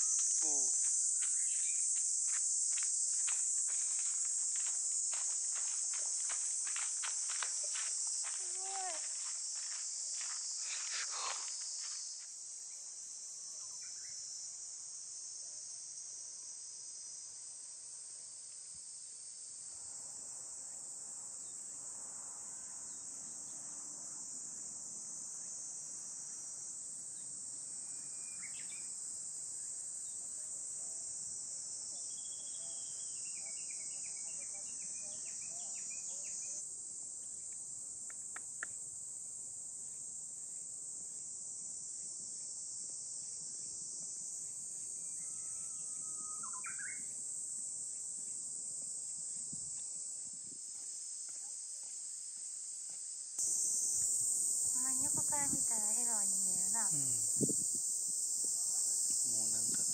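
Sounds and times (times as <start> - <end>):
high-pitched insect chorus: 0.0 - 59.9.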